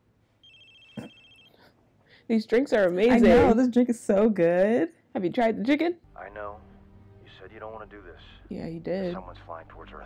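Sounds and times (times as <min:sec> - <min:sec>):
phone ringing: 0:00.4 - 0:01.7.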